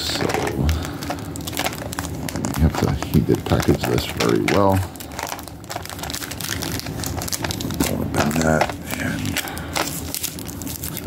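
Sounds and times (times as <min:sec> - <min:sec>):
envelope crinkling and rustling: 0:00.0 - 0:11.0.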